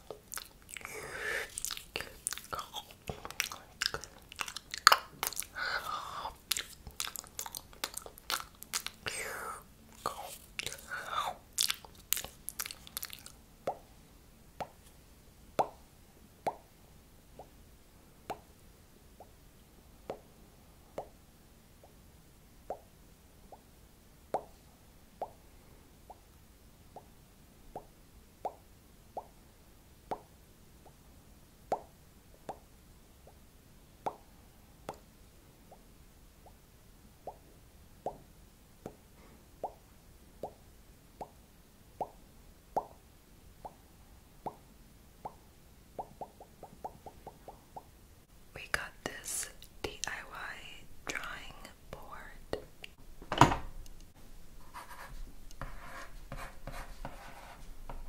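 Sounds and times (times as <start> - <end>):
wet crunching mouth sounds: 0.0 - 13.4.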